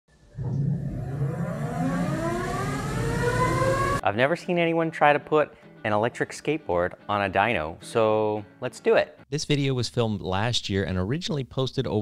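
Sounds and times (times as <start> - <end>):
low rumble: 0.2 - 3.5
electric motors whining: 0.7 - 4.0.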